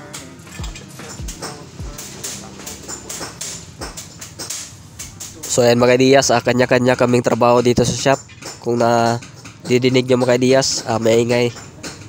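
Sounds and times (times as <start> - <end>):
pop song playing: 0.0 - 6.0
hand tool clicks and knocks: 0.1 - 5.8, 7.0 - 12.0
low thumps: 0.5 - 6.0.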